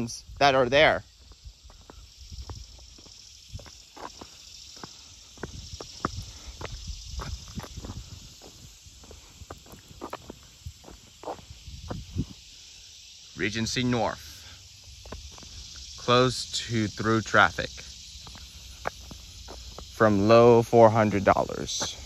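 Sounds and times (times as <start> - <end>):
insects buzzing: 0.0 - 22.0
footsteps on asphalt: 1.1 - 12.5, 14.8 - 15.9, 17.8 - 20.2, 21.1 - 22.0.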